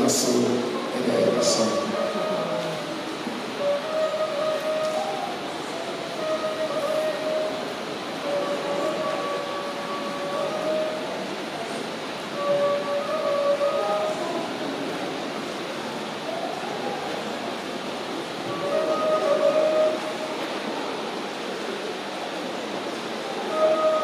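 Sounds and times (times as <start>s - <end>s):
flute playing long notes: 0.0s - 22.2s, 23.0s - 24.0s
room and crowd noise hiss: 0.0s - 24.0s.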